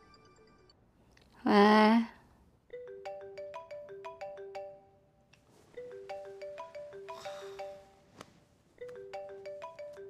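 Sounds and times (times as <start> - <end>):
smartphone ringtone melody: 2.7 - 8.1, 8.8 - 10.0.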